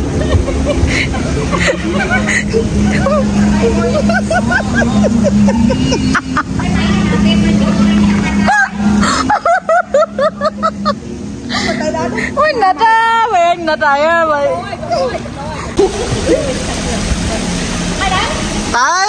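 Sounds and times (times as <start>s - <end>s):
women laughing and talking: 0.0s - 18.6s
steady low hum: 0.0s - 18.8s.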